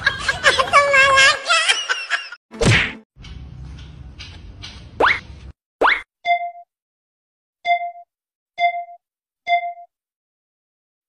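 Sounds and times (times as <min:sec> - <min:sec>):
comedy whack with falling swoosh: 0:02.6 - 0:03.0.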